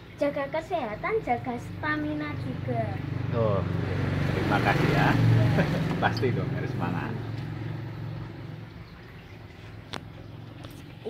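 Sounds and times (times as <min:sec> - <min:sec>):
low engine hum: 0:00.8 - 0:11.0.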